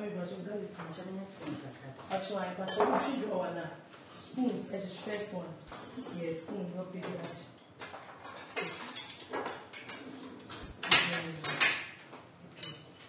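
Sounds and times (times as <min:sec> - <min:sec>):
spoons and dishes clinking: 0:07.2 - 0:11.8.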